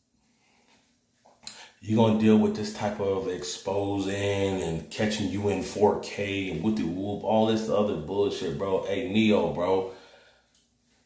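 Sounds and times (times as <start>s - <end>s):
man's voice: 1.8s - 10.0s
soft rustle: 10.5s - 11.0s.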